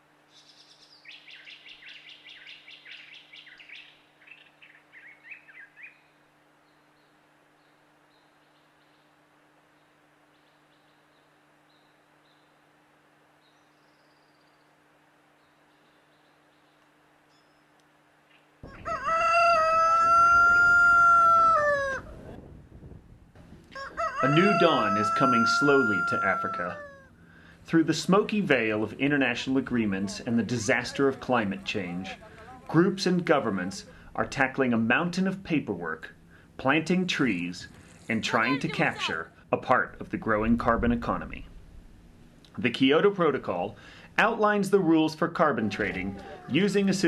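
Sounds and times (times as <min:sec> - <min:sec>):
songbird chirping: 0:00.3 - 0:12.7, 0:13.3 - 0:18.6
rooster crowing: 0:18.6 - 0:22.4, 0:23.7 - 0:27.1, 0:45.6 - 0:46.8.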